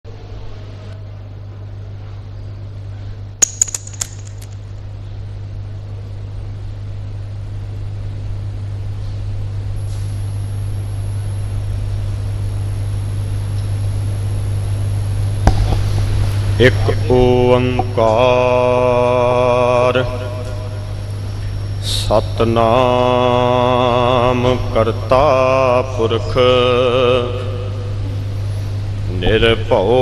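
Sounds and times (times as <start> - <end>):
steady low hum: 0.1 - 30.0
sharp clicks: 3.4 - 4.8.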